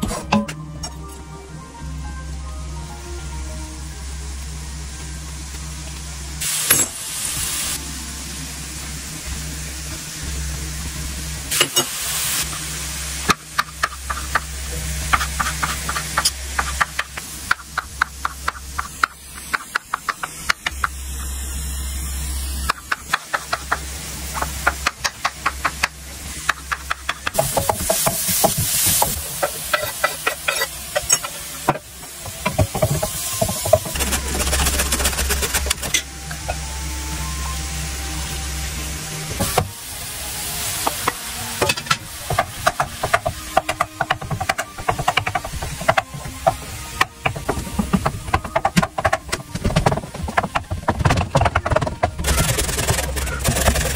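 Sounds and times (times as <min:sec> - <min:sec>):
food sizzling in frying pan: 0:05.6 - 0:51.2
zucchini scraped on grater: 0:33.9 - 0:35.9.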